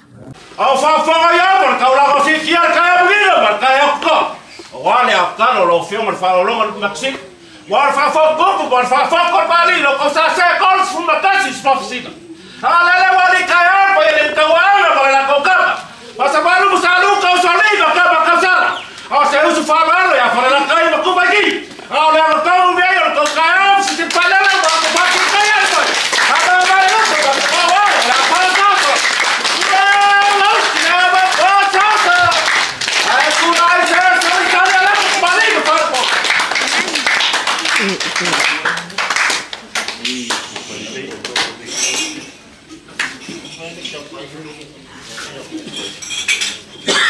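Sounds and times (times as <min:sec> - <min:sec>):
man speaking loudly: 0:00.2 - 0:36.7
hand claps: 0:23.2 - 0:42.2, 0:43.0 - 0:43.2.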